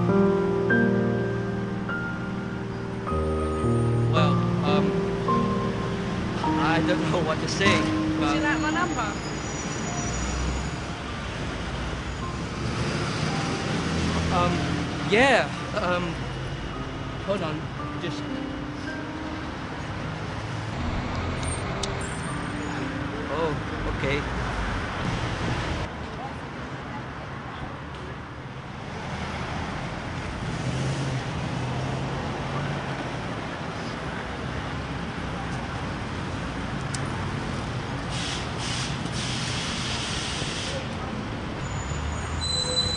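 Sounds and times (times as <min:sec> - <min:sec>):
bus engine hum: 0:00.0 - 0:27.0
road traffic rumble: 0:00.0 - 0:42.9.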